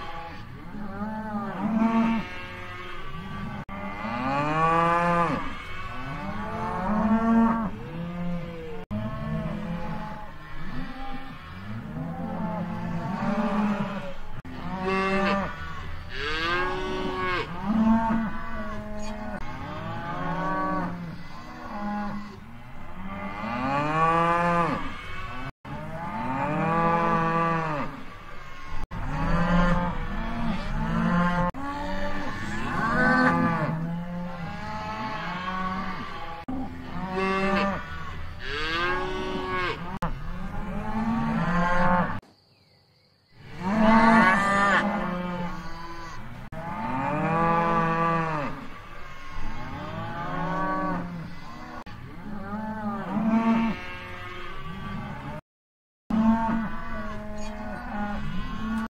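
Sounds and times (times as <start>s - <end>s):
cows mooing: 0.0s - 42.2s, 43.5s - 55.4s, 56.1s - 58.9s.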